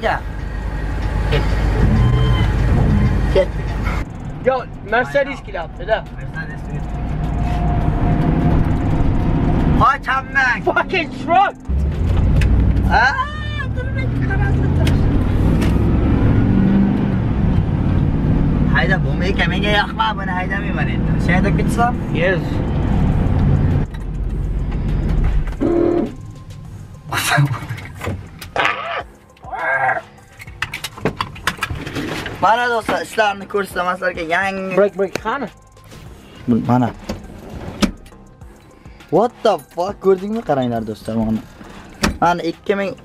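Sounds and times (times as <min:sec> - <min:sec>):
truck engine from inside cab: 0:00.0 - 0:10.6
road noise: 0:00.0 - 0:43.0.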